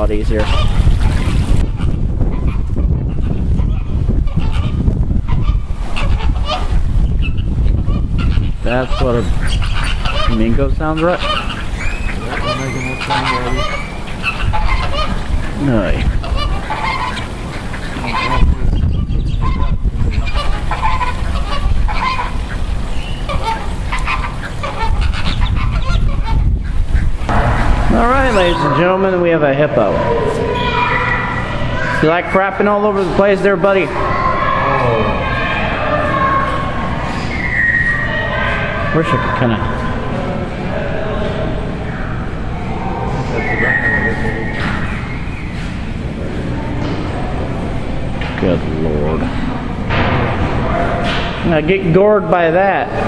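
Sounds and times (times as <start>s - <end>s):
steady low rumble: 0.0s - 32.0s
flamingos honking: 0.0s - 53.0s.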